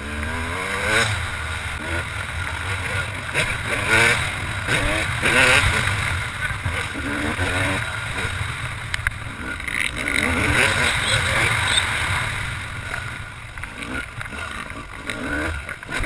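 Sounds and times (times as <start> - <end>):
motocross engine revving: 0.0 - 16.0.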